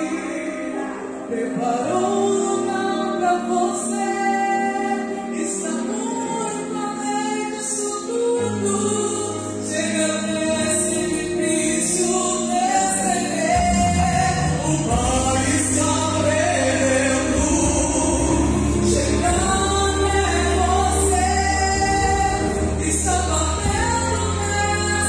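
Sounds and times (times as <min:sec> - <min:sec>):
instrumental accompaniment: 0:00.0 - 0:25.0
woman singing gospel song: 0:00.0 - 0:25.0
bass line: 0:08.6 - 0:25.0.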